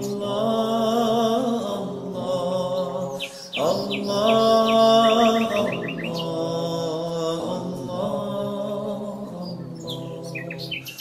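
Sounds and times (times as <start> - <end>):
songbirds chirping: 0.0 - 11.0
sustained chanting: 0.0 - 11.0.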